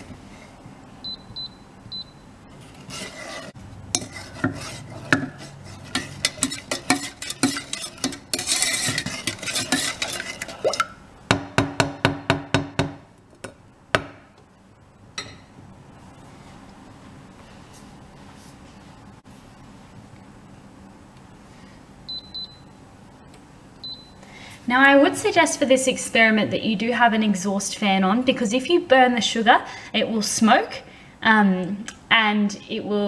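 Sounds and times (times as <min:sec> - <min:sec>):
wooden spoon scraping a pan: 0:02.6 - 0:10.8
faint steady hum: 0:12.3 - 0:33.0.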